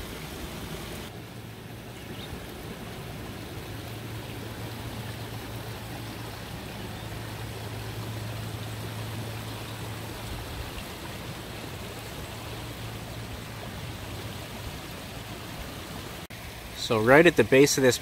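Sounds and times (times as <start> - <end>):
running water: 0.0 - 18.0.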